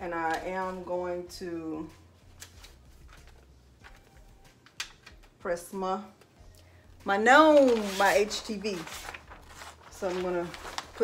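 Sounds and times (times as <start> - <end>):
hands rustling paper and fabric: 7.3 - 11.0.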